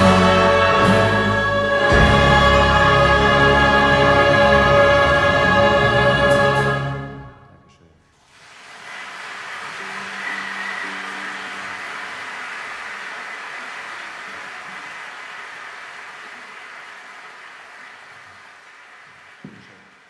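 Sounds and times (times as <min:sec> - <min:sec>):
audience applauding: 0:08.2 - 0:20.0.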